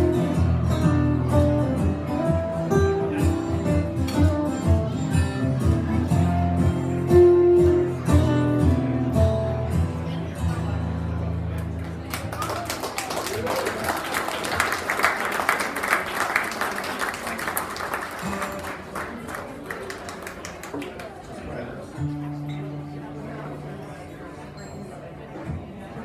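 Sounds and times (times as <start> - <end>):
audience applauding: 11.8 - 21.3.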